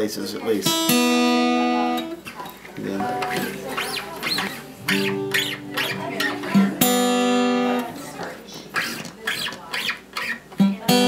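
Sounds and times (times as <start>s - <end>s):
acoustic guitar strings plucked: 0.6s - 11.0s
faint high squeaks: 3.2s - 6.7s, 8.2s - 10.5s.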